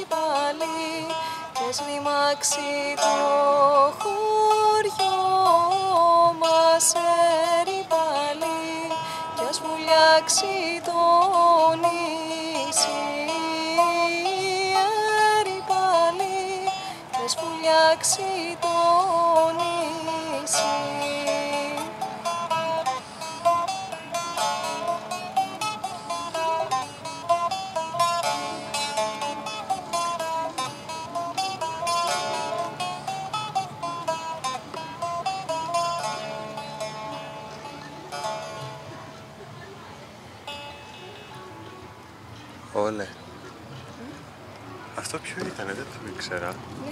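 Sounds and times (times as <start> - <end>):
plucked string instrument melody: 0.0 - 46.9.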